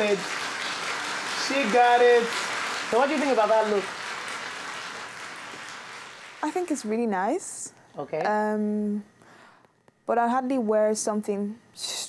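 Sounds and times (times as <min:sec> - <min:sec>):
audience clapping: 0:00.0 - 0:06.9.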